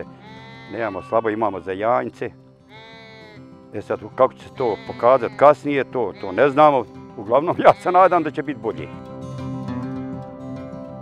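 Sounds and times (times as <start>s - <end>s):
sheep bleating: 0.0s - 9.0s
man speaking: 0.7s - 2.3s, 3.8s - 9.0s.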